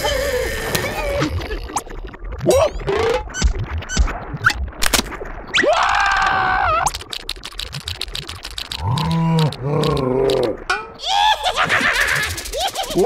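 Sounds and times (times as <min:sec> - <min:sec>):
fast rattling clatter: 0:06.9 - 0:08.8, 0:11.6 - 0:13.0
cartoon character groan: 0:08.8 - 0:11.6.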